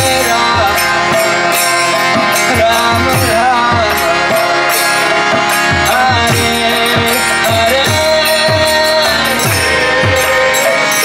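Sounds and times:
bright jingle: 0.0 - 11.0
drum bass strokes: 0.0 - 11.0
man singing devotional chant: 0.0 - 11.0
sustained harmonium: 0.0 - 11.0.

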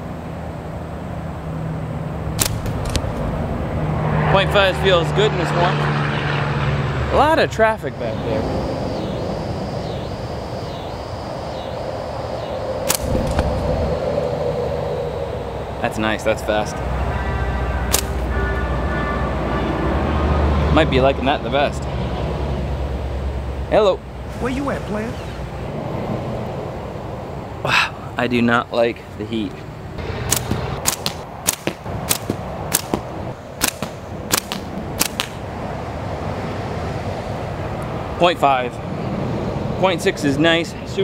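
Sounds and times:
road traffic rumble: 0.0 - 41.0
slingshot snap: 2.4 - 3.1, 12.8 - 13.5, 17.9 - 18.3, 30.3 - 33.0, 33.6 - 35.4.

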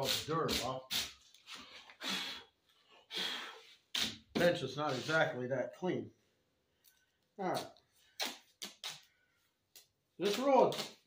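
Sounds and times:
faint brush: 4.8 - 5.4.

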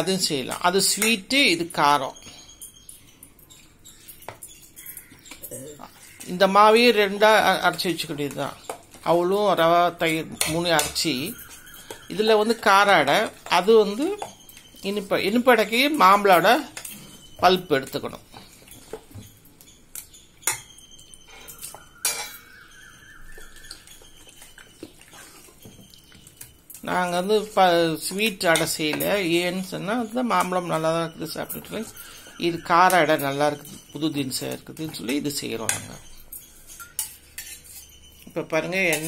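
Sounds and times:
spoon stirring batter in metal bowl: 0.0 - 39.0
spoon clinking bowl: 7.0 - 39.0.

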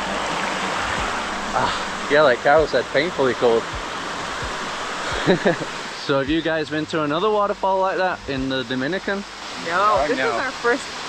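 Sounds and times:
waterfall rushing into pool: 0.0 - 11.0.

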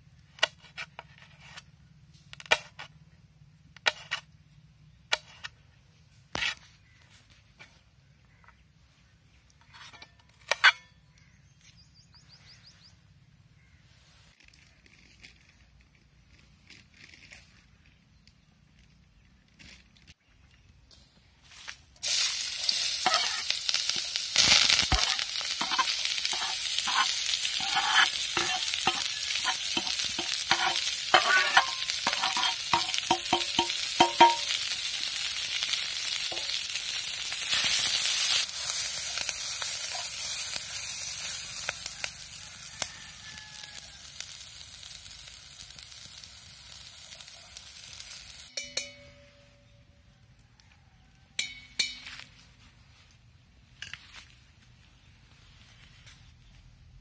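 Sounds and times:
ladle scraping pan: 22.0 - 35.0
vegetables sizzling in hot oil: 22.0 - 48.5.

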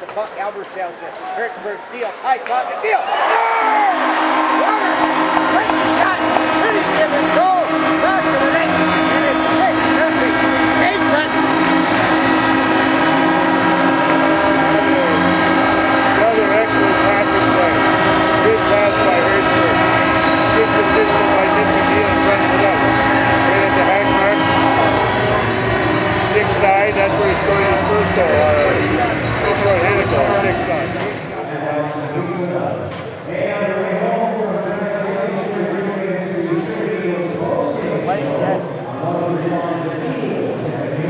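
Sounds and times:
crowd cheering: 0.9 - 31.6
arena goal horn blast: 3.2 - 31.4.

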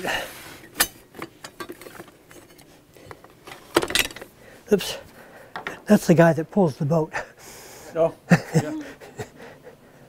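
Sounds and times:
rummaging through tools: 0.0 - 4.4.

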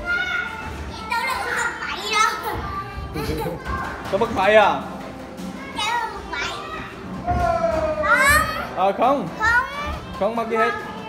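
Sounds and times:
young children chattering: 0.0 - 4.1
room hubbub: 0.0 - 11.0.

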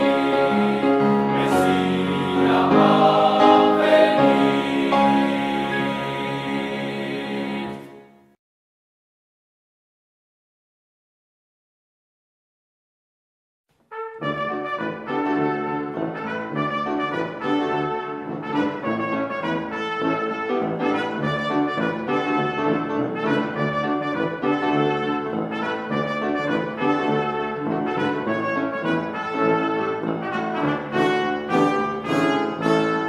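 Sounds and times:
brass instruments playing: 0.0 - 8.2, 13.9 - 33.0.

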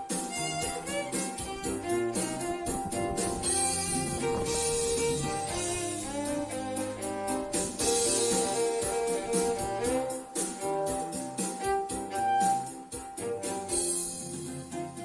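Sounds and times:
bowed violin melody: 0.0 - 13.5
backing track with steady beat: 0.0 - 15.0.

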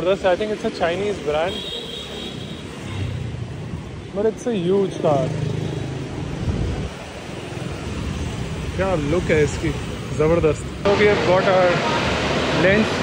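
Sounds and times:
passing cars and motorbikes: 0.0 - 13.0.

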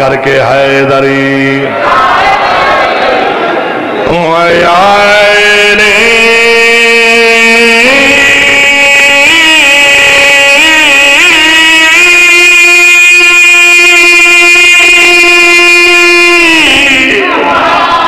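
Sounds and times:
man chanting into a microphone: 0.0 - 1.8, 4.0 - 17.4.

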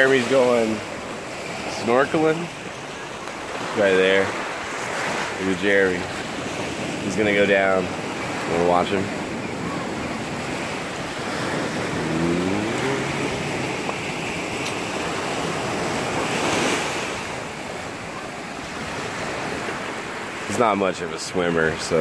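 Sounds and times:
waves washing onto beach: 0.0 - 22.0
wind on microphone: 6.0 - 19.9.

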